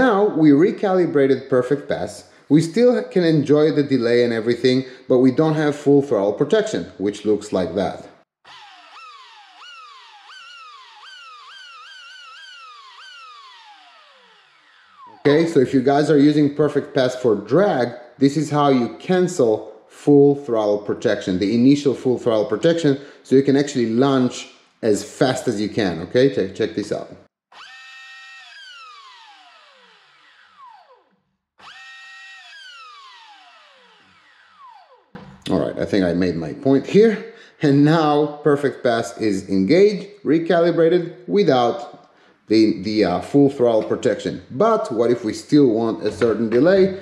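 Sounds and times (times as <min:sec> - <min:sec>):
electric motor whining up and down: 0:08.5 - 0:15.6, 0:27.5 - 0:35.1.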